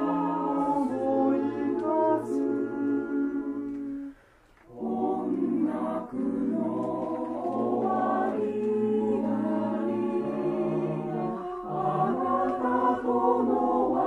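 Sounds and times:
mixed choir singing: 0.0s - 14.0s.

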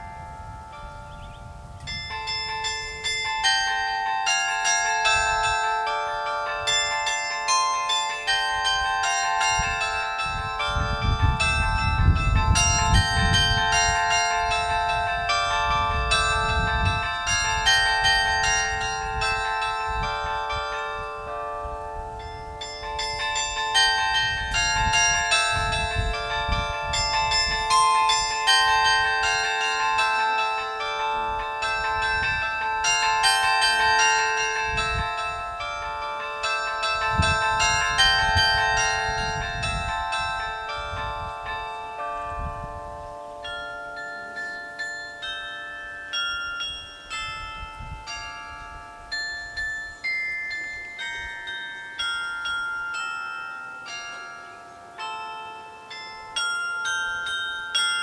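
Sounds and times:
carillon bells playing a tune: 0.0s - 58.0s.

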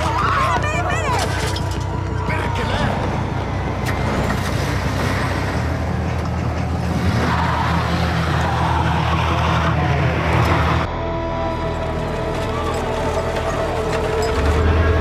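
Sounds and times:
car engine running and revving: 0.6s - 15.0s.

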